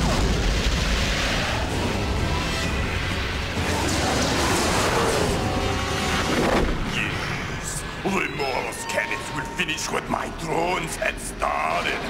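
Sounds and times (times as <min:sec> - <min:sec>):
faint film score: 0:00.0 - 0:12.0.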